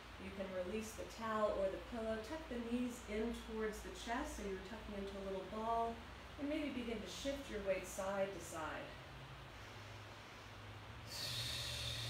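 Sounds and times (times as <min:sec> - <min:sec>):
faint steady hum: 0:00.0 - 0:12.0
person breathing out: 0:09.6 - 0:12.0.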